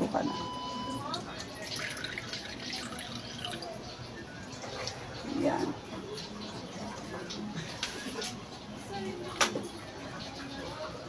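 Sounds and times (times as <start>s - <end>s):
liquid pouring into a wok: 1.1s - 3.8s.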